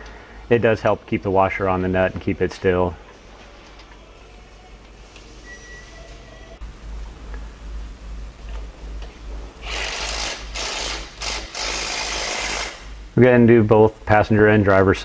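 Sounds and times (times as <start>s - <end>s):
impact wrench hammering: 9.6s - 13.0s.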